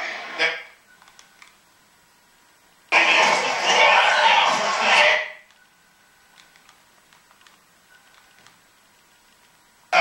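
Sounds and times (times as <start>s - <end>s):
tv commentary: 0.0s - 1.6s, 2.7s - 8.6s.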